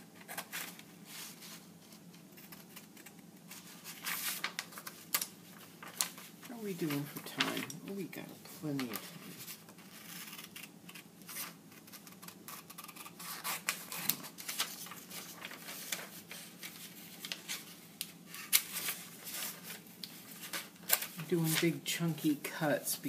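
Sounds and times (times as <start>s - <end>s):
paper rustling: 0.2s - 21.8s
scissors snipping paper: 10.1s - 14.3s.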